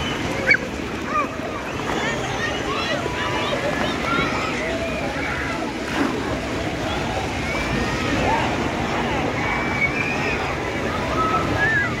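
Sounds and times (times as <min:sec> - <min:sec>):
distant shouts and chatter: 0:00.0 - 0:12.0
water noise: 0:00.0 - 0:12.0.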